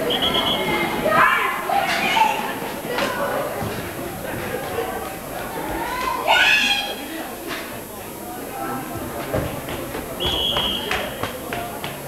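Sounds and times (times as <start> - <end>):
young voices shouting: 0.0 - 3.6, 5.5 - 7.1.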